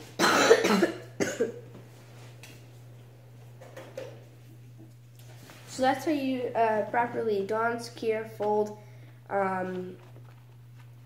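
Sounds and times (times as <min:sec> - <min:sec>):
low steady hum: 0:00.0 - 0:11.0
boy coughing: 0:00.2 - 0:01.6.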